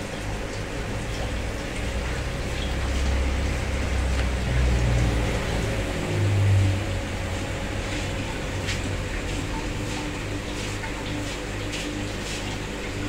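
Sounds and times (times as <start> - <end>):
bubbling water: 0.0 - 13.0
electric hum: 0.0 - 13.0.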